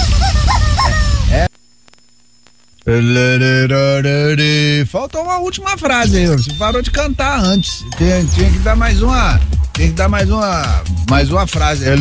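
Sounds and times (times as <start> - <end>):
faint steady hum: 0.3 - 9.6.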